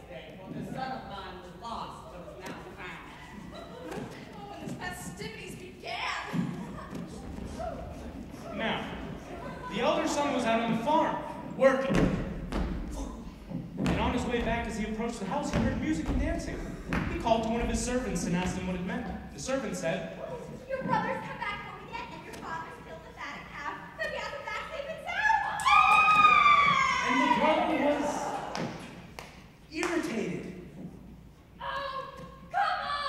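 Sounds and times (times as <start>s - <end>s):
dull thumps: 11.8s - 18.8s
person calling out in a hall: 26.2s - 28.6s.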